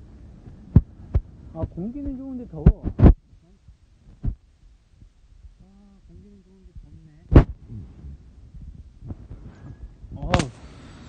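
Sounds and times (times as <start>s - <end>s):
wind buffeting microphone: 0.2s - 10.5s.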